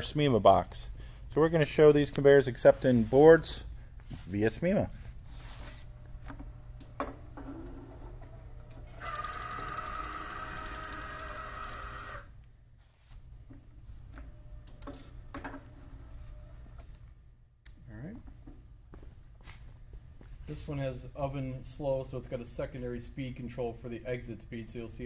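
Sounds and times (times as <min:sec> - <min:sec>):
conveyor motors whining: 0:05.6 - 0:12.4.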